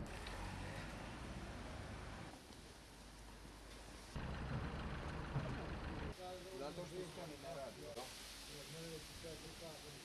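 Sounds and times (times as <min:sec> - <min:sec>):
truck engine running: 0:04.2 - 0:06.1.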